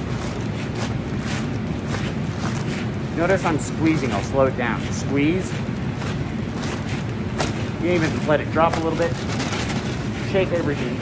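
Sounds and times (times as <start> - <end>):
fan hiss: 0.0 - 11.0
plastic bag of grain squeezed: 0.0 - 11.0.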